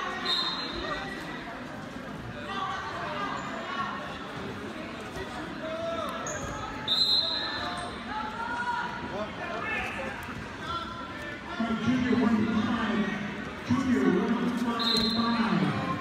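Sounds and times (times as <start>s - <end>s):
crowd talking and calling out: 0.0s - 16.0s.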